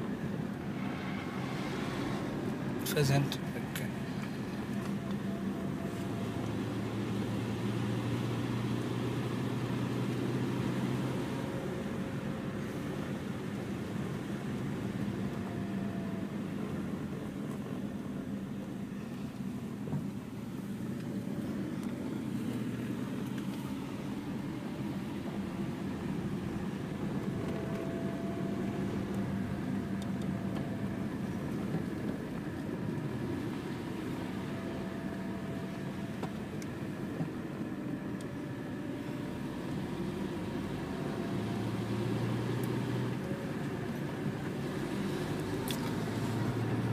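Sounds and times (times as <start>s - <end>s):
car engine and tyre hum: 0.0s - 46.9s.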